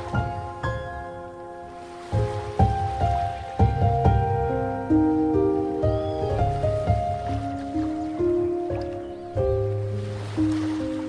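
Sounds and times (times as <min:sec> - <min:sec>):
gentle piano melody: 0:00.0 - 0:11.0
ocean waves rumbling: 0:00.0 - 0:11.0.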